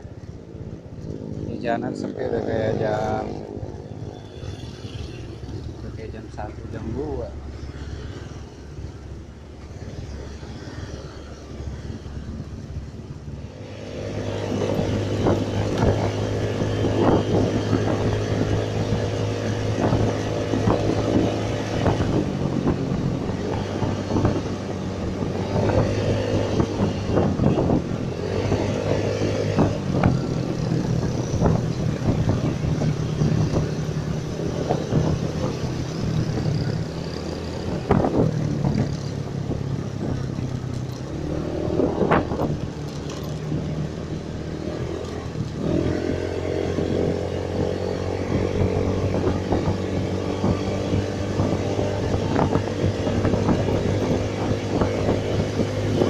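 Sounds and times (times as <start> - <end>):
motorcycle engine: 0.0 - 56.0
wind buffeting microphone: 0.0 - 56.0.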